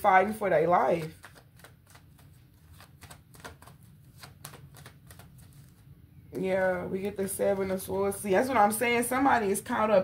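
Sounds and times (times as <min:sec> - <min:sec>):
cards being shuffled by hand: 0:00.2 - 0:05.9.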